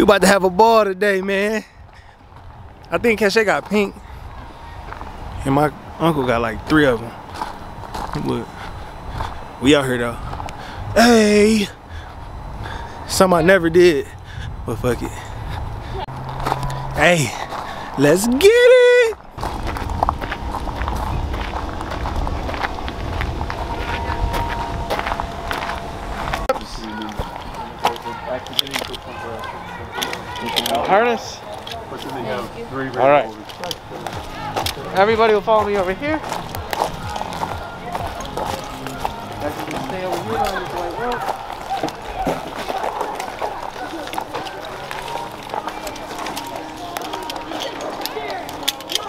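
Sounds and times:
voices speaking: 0.0 - 49.0
footsteps on gravel: 1.9 - 12.9, 15.0 - 30.7, 33.3 - 49.0
low camera rumble: 19.2 - 27.8.

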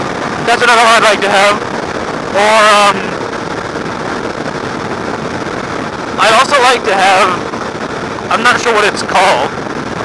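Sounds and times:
motorcycle engine and road noise: 0.0 - 10.0
wind buffeting microphone: 0.0 - 10.0.

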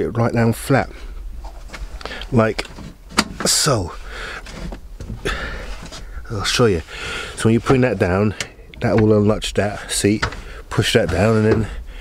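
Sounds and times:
fabric rustle and seat shuffling: 1.3 - 11.8.

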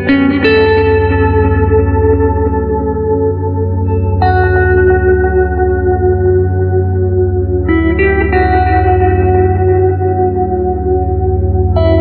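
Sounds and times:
held chord with echo: 0.0 - 12.0
steady low bass: 0.0 - 12.0.

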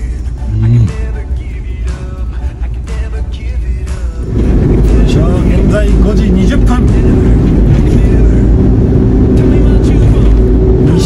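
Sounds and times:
van engine and road rumble: 0.0 - 11.0.

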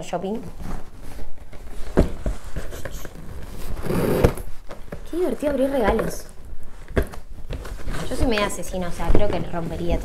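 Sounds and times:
cardboard rustling scrape: 0.5 - 10.0.

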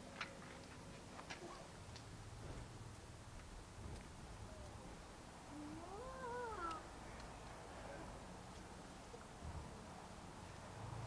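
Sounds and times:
drawn-out rising and falling cry: 5.5 - 7.0.

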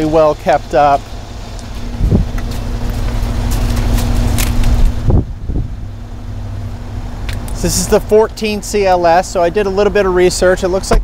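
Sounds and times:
car engine idling: 0.0 - 11.0
wind noise on microphone: 1.8 - 6.0.

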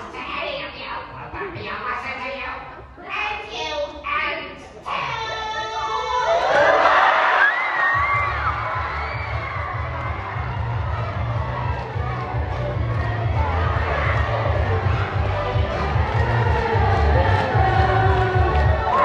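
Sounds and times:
high screams: 6.0 - 10.7
audience cheering and shouting: 6.0 - 19.0.

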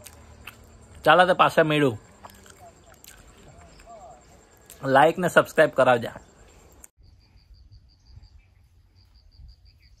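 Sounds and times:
insect chirping: 0.0 - 10.0
bird chirps: 2.6 - 4.9, 6.0 - 10.0.

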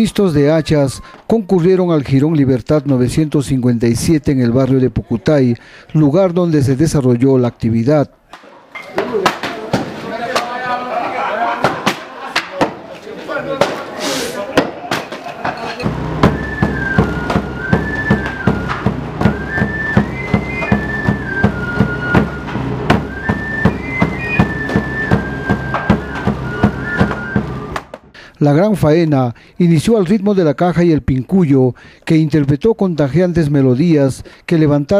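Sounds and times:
high flute melody: 15.8 - 27.9
steady drumbeat: 15.8 - 28.1.

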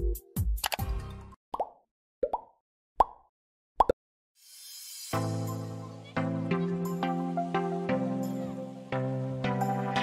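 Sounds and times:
music: 0.0 - 1.4, 4.4 - 10.0.

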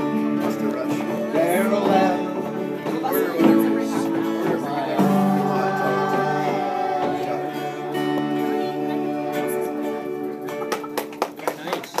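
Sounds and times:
acoustic guitar chord ringing: 0.0 - 11.3
hand clapping: 10.3 - 12.0.

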